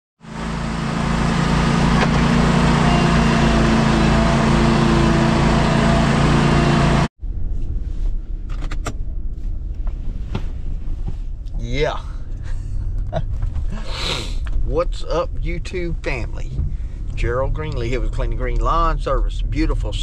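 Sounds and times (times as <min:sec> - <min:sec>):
lawn mower engine running: 0:00.2 - 0:07.1
low rumble: 0:07.2 - 0:20.0.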